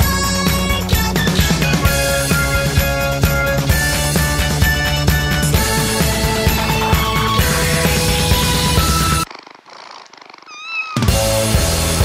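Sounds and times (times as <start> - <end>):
loud rock music: 0.0 - 9.3, 11.1 - 12.0
cat purring: 6.9 - 11.5
cat meowing: 9.7 - 11.2.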